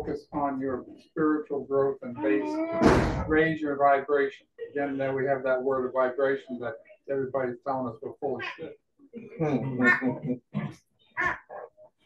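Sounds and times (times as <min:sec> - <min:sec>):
person laughing: 0:09.4 - 0:10.6.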